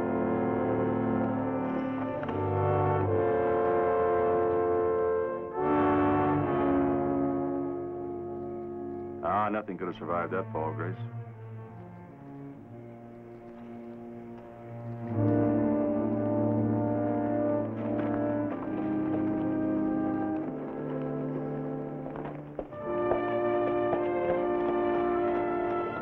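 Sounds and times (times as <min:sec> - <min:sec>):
orchestral brass and strings chords: 0:00.0 - 0:26.0.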